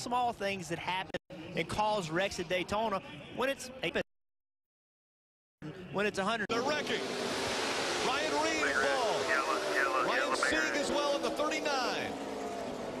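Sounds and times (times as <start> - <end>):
crowd noise: 0.0 - 4.0, 5.6 - 13.0
race car engines roaring: 5.7 - 13.0.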